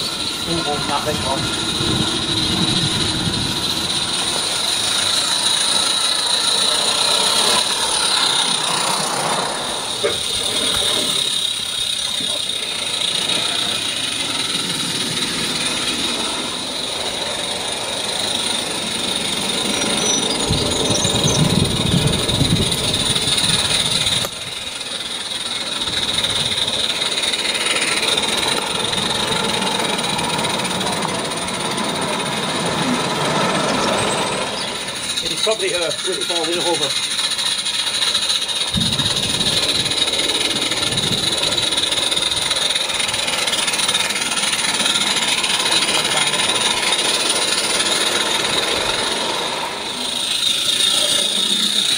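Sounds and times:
small steam locomotive running: 0.0s - 51.9s
people talking: 0.4s - 1.6s, 10.0s - 14.0s, 35.2s - 37.0s, 45.6s - 46.8s.

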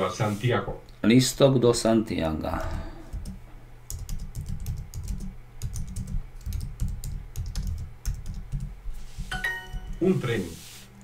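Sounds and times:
computer keyboard typing: 3.1s - 8.8s
short multi-tone chime: 9.3s - 10.0s.

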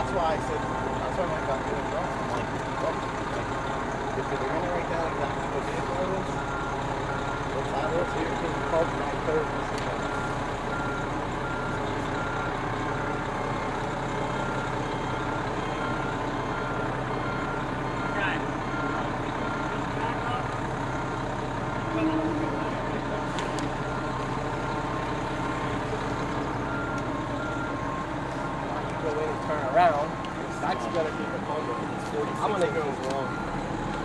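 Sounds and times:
truck engine running: 0.0s - 34.0s
backup alarm beeping: 4.9s - 13.6s, 14.3s - 34.0s.

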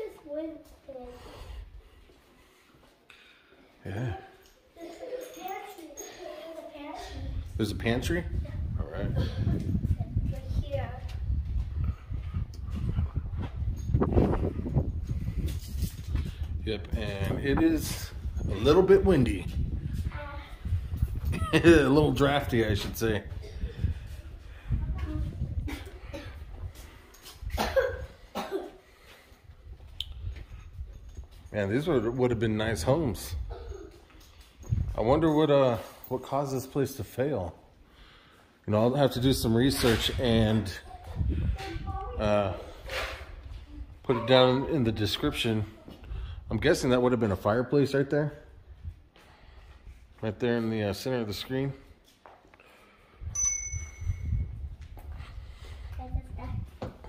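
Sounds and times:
wind rumble on microphone: 7.2s - 28.1s, 29.4s - 31.5s, 34.6s - 35.2s, 39.3s - 44.0s, 46.0s - 46.8s, 53.2s - 57.0s
man coughing: 27.5s - 28.8s
bright metallic ring: 53.3s - 54.5s.

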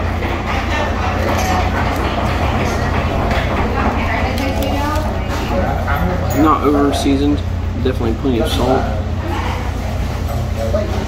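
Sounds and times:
indistinct diners chatter: 0.0s - 11.0s
steady low hum: 0.0s - 11.0s.

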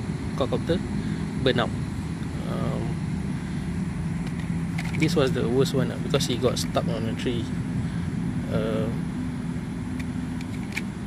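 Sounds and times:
constant low hum: 0.0s - 11.0s
low mechanical rumble: 0.0s - 11.0s.

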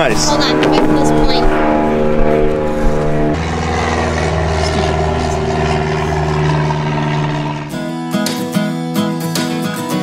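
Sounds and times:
loud engine drone: 0.0s - 8.0s.

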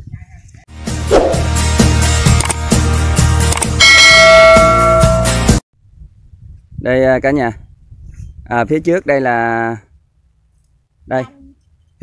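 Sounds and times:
bright bell chime: 3.8s - 5.4s.

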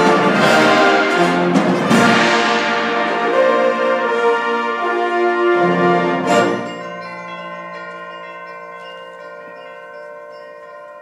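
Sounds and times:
bell-like chimes ringing: 6.3s - 11.0s.

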